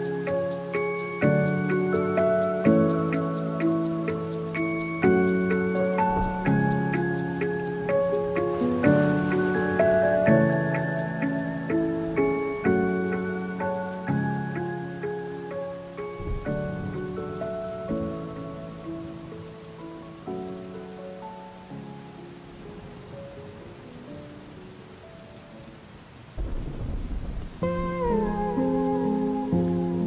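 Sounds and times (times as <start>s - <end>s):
mellow lo-fi music: 0.0s - 30.0s
steady rain: 0.0s - 30.0s
low rumble of thunder: 1.2s - 14.7s, 16.2s - 19.5s, 26.3s - 30.0s.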